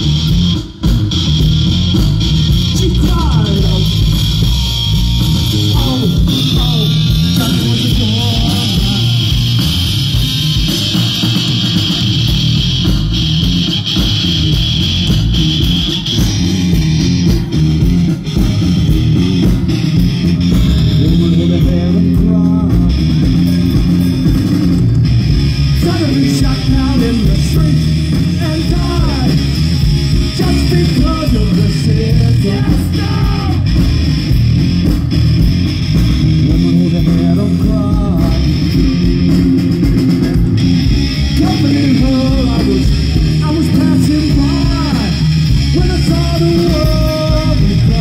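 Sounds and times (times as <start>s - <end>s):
punk rock band playing loudly: 0.0s - 48.0s.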